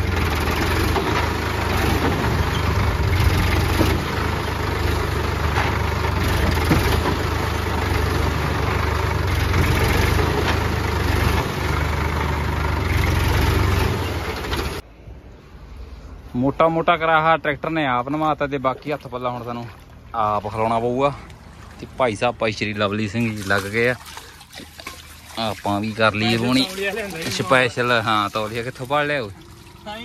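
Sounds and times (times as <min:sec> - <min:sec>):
tractor diesel engine running: 0:00.0 - 0:14.9, 0:19.2 - 0:30.0
tyres splashing water: 0:17.8 - 0:30.0.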